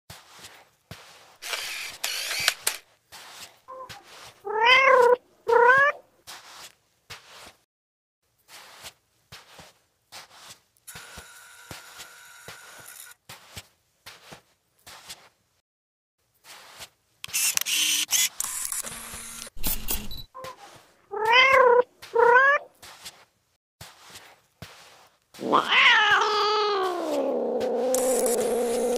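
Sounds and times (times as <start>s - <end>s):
cat meowing: 3.7s - 6.0s, 20.4s - 22.7s, 25.4s - 28.5s.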